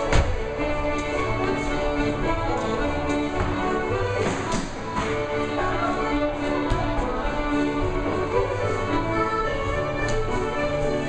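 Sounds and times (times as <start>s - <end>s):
feet tapping on wooden floor: 0.0s - 10.6s
fiddle and accordion dance band: 0.0s - 11.0s.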